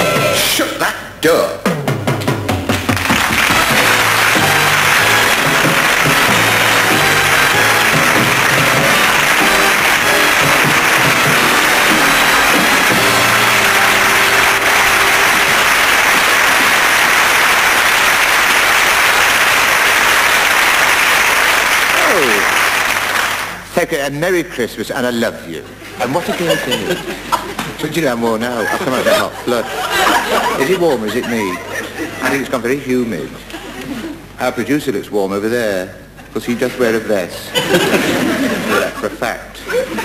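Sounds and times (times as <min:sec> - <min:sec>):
band playing: 0:01.6 - 0:23.6
audience applauding: 0:02.7 - 0:23.7.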